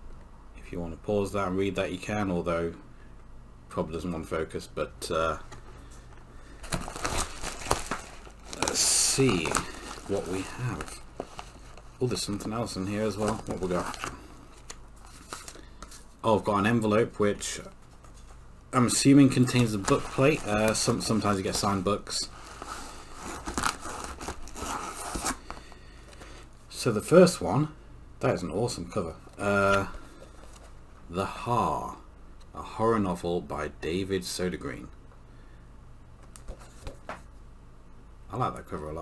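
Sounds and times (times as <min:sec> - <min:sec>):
rustling in a box: 0:06.6 - 0:16.1, 0:17.7 - 0:26.2.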